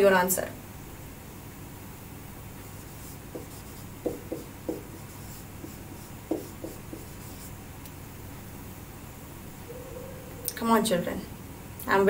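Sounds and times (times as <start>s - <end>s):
marker pen writing on a board: 2.8s - 7.5s.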